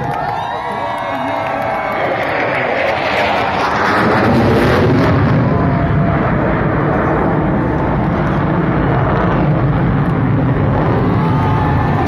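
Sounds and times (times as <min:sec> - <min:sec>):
jet engine rush overhead: 0:00.0 - 0:12.0.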